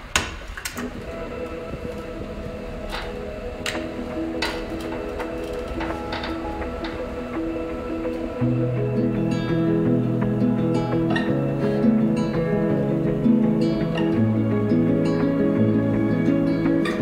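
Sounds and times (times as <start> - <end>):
droning tape loop notes: 0.0 - 17.0.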